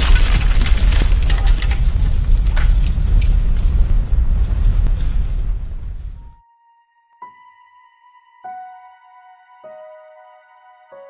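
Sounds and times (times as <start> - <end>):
crackling shattering debris: 0.0 - 6.2
deep heavy rumble: 0.0 - 6.4.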